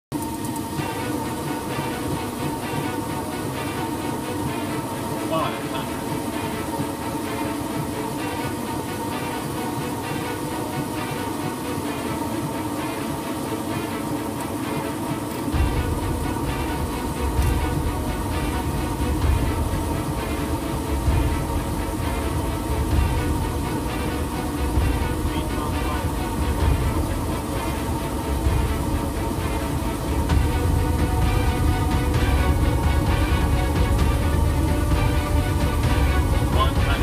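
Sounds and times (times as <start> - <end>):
airliner cockpit noise: 0.0 - 37.0
windshield wipers: 0.2 - 36.9
deep rumble: 15.5 - 37.0.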